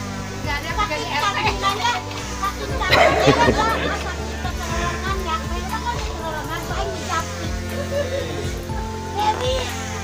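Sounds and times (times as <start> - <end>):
background music: 0.0 - 10.0
group of people chatting: 0.3 - 9.8.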